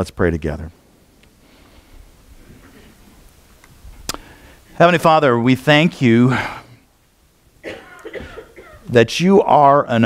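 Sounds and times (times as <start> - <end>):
person coughing softly: 7.6 - 8.9.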